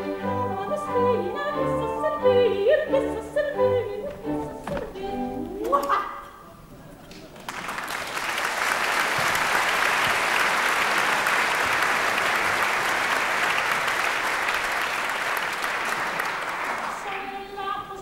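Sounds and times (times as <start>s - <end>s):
theatre audience applauding: 7.1s - 17.6s.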